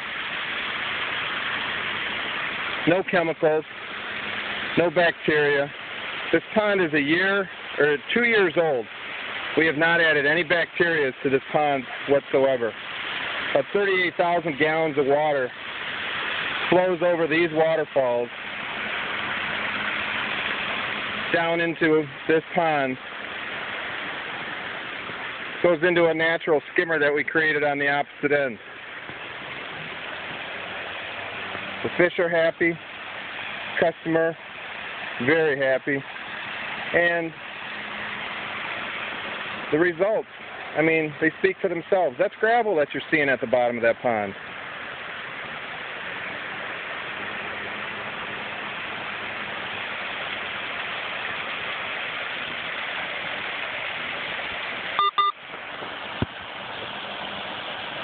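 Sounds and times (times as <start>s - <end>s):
waterfall pouring into pond: 0.0s - 58.0s
short electronic beeps: 55.0s - 55.4s.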